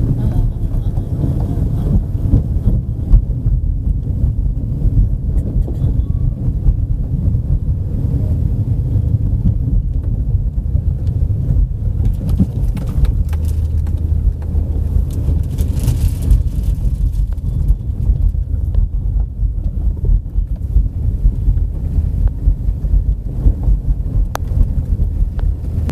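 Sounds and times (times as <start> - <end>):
car engine and road noise: 0.0 - 25.9.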